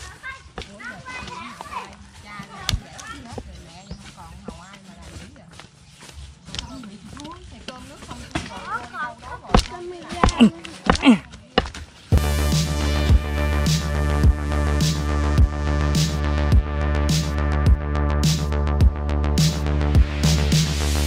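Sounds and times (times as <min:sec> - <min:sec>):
faint voices: 0:00.0 - 0:11.7
electronic music with steady beat: 0:12.2 - 0:21.0.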